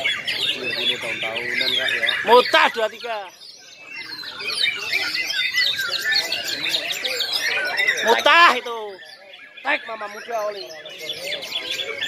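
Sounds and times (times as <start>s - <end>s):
many birds singing: 0.0s - 12.0s.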